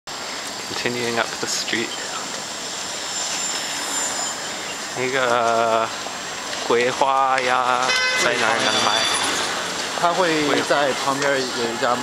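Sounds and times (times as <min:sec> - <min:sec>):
distant traffic: 0:00.1 - 0:12.0
faint high steady whine: 0:00.1 - 0:12.0.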